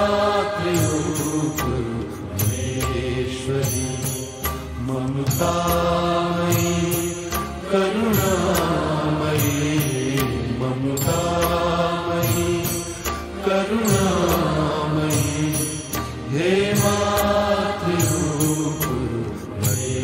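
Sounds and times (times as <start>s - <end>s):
man singing devotional song: 0.0s - 20.0s.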